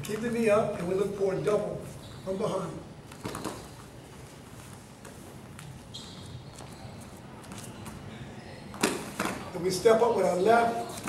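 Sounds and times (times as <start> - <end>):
shoe squeak: 1.8 - 3.8, 5.6 - 8.1.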